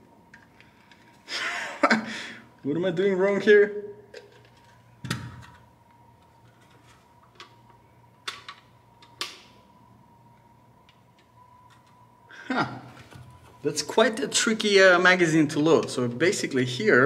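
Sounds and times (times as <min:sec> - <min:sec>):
faint steady high tone: 0:09.1 - 0:17.0.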